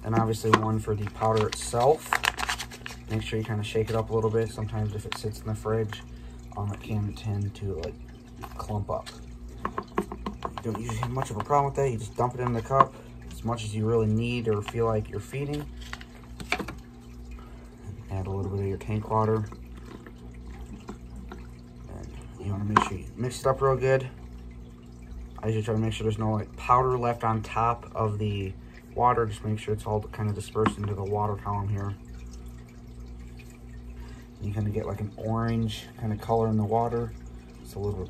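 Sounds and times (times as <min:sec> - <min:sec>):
steady low hum: 0:00.0 - 0:38.0
trickle of running water: 0:00.0 - 0:38.0
plastic cup tap: 0:09.6 - 0:11.6.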